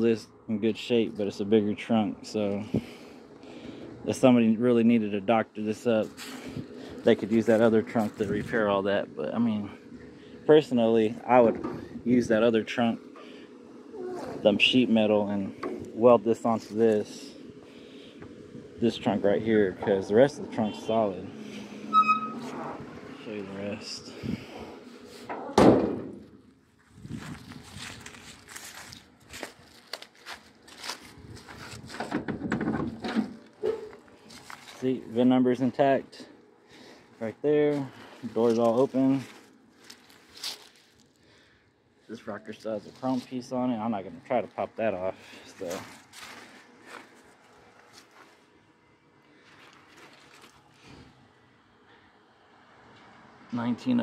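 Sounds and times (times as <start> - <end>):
car trunk lid thudding shut: 25.5 - 26.2
footsteps on dry leaves: 26.7 - 32.0, 33.9 - 35.0, 36.8 - 41.3, 45.2 - 48.5, 49.4 - 50.9.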